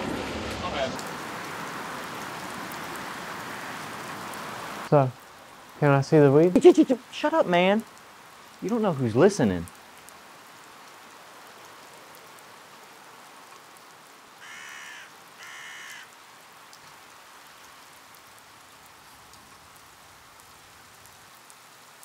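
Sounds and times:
light rain hiss: 0.0s - 22.0s
crow cawing: 3.3s - 4.1s, 14.4s - 16.2s.

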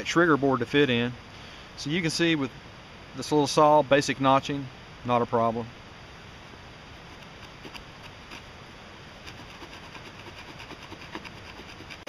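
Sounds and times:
saw teeth rasping on wood: 7.1s - 8.5s, 9.2s - 12.0s.

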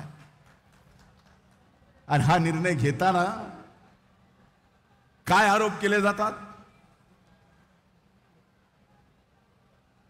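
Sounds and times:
amplified speech: 2.1s - 3.7s, 5.3s - 6.6s.

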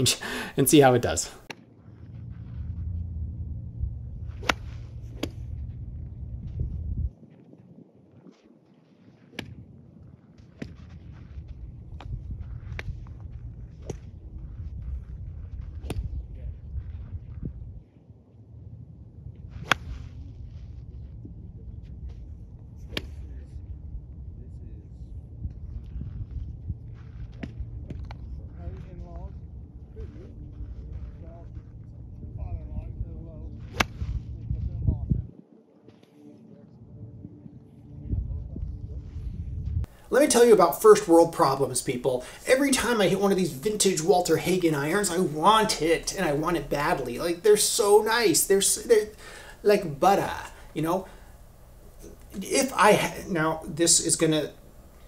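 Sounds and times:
low rumble: 1.7s - 7.2s, 10.8s - 17.8s, 29.3s - 35.3s, 37.0s - 40.0s.

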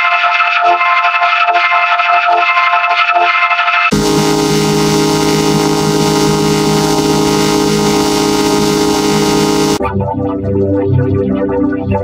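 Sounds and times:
distorted sustained chord: 3.9s - 9.8s.

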